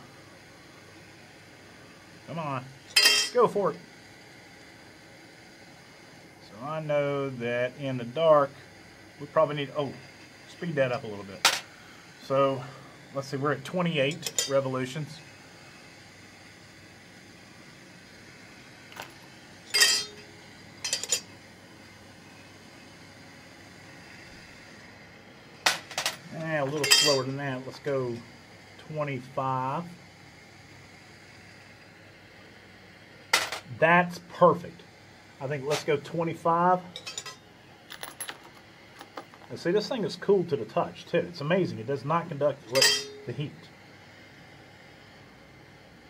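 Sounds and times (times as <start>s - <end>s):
gas torch flame hissing: 0.0s - 37.9s, 38.6s - 46.0s
brass cases clinking into metal pan: 19.7s - 20.2s, 26.8s - 27.2s, 42.8s - 43.1s.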